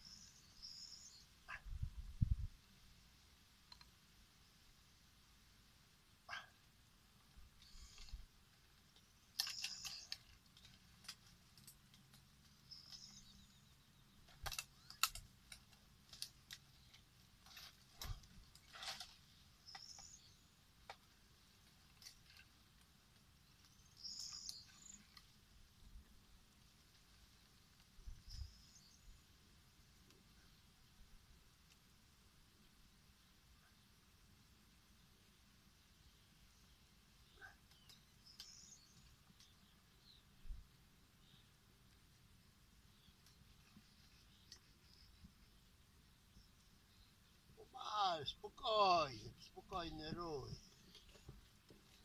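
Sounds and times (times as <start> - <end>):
faint bird chirps: 0.0 - 2.4, 9.0 - 10.8, 12.5 - 15.2, 16.7 - 20.6, 23.5 - 25.4, 28.0 - 29.4, 35.8 - 41.6, 42.8 - 48.6.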